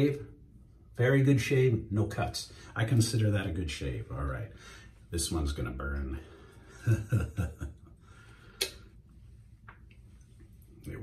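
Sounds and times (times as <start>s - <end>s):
man chuckling: 6.6s - 8.0s.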